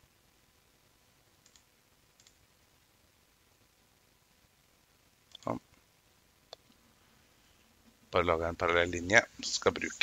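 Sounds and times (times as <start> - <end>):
computer mouse clicks: 1.4 - 2.4, 5.3 - 5.6.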